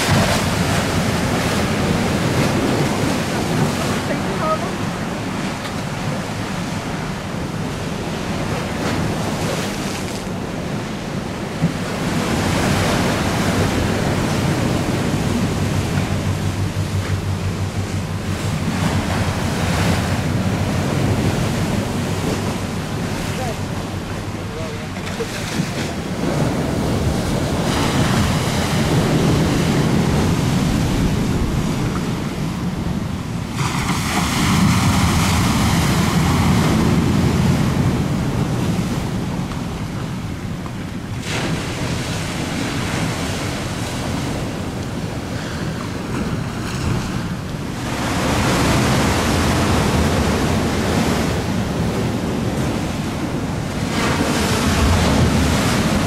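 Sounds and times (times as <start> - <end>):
choppy water breaking: 0.0 - 56.0
wind on microphone: 0.0 - 56.0.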